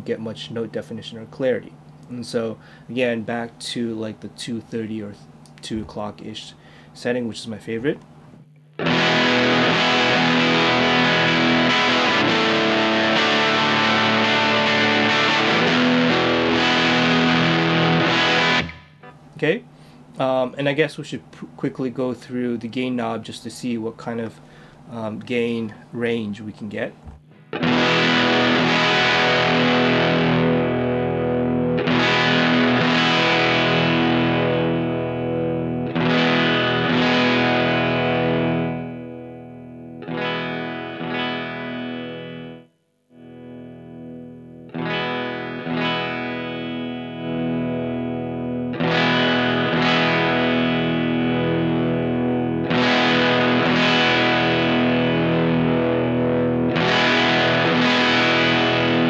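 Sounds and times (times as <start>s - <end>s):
distorted electric guitar chords: 8.4s - 19.2s, 27.1s - 59.0s.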